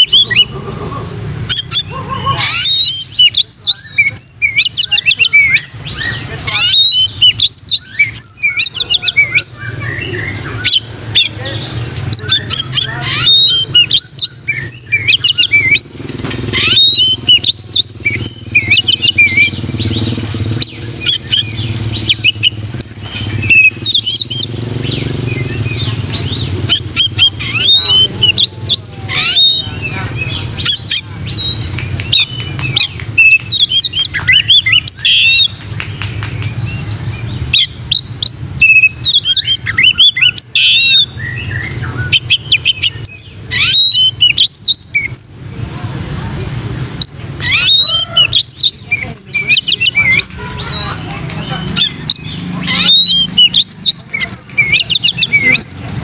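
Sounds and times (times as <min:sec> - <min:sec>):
bird singing whistled phrases: 0:00.0 - 0:00.5, 0:01.5 - 0:11.3, 0:12.1 - 0:35.6, 0:36.6 - 0:45.4, 0:47.0 - 0:55.9.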